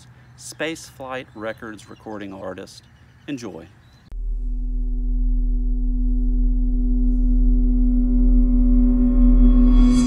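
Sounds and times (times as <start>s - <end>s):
deep hum: 4.1s - 10.0s
electronic drone tone: 4.1s - 10.0s.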